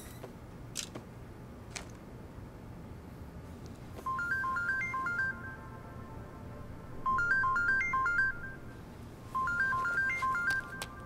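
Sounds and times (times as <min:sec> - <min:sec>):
mobile phone ringtone: 0:04.1 - 0:11.0.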